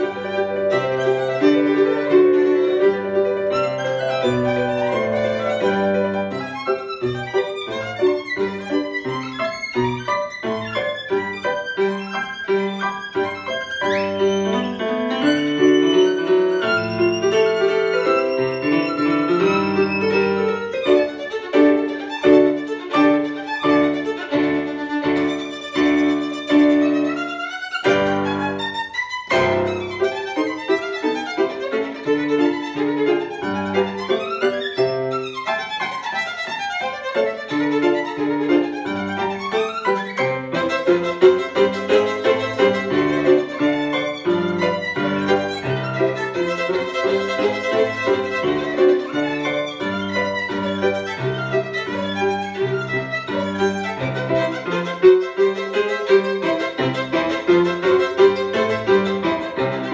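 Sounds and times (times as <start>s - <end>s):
piano accompaniment: 0.0s - 59.9s
solo violin played with bow: 0.0s - 59.9s.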